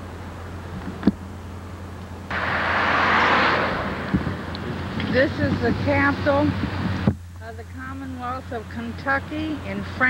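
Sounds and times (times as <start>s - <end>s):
steady low hum: 0.0s - 10.0s
passing vehicle rushing: 2.3s - 7.1s.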